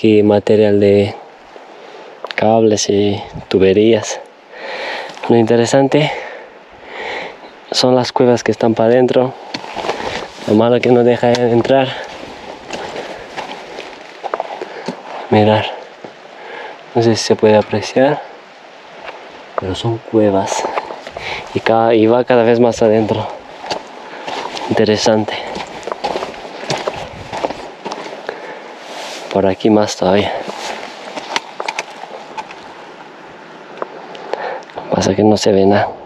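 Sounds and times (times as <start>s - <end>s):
steady hiss: 0.0s - 36.0s
footsteps on gravel: 9.4s - 16.2s, 20.5s - 21.7s, 22.8s - 29.4s, 30.2s - 32.8s.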